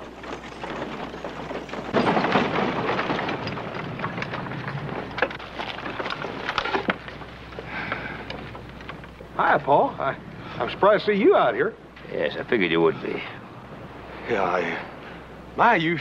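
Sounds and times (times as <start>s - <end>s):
hoofbeats: 0.0s - 2.2s
scattered knocks: 0.0s - 9.7s
wheels crunching on dirt: 0.0s - 16.0s.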